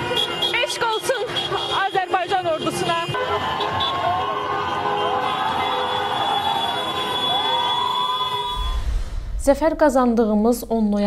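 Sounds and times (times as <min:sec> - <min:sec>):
car horns honking: 0:00.0 - 0:08.8
crowd shouting and cheering: 0:02.6 - 0:09.0.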